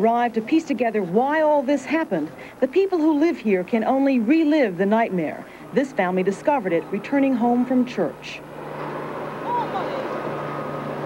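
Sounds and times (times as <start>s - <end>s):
steady rushing street noise: 0.0s - 11.0s
faint voice: 9.4s - 10.2s.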